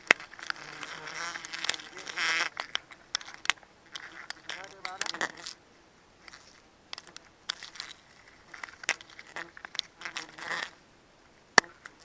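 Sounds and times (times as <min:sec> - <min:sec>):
clicks and scrapes on tree bark: 0:00.0 - 0:05.6, 0:06.2 - 0:10.8.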